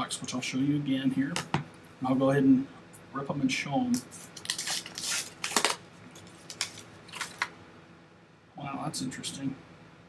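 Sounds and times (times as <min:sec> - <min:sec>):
plastic wrap ripping and crinkling: 0:04.1 - 0:07.5.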